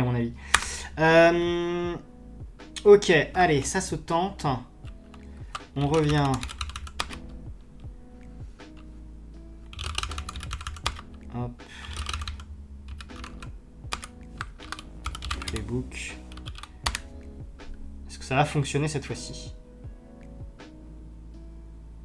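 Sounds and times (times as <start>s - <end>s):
computer keyboard typing: 4.9s - 7.4s, 9.7s - 11.2s, 11.8s - 17.1s.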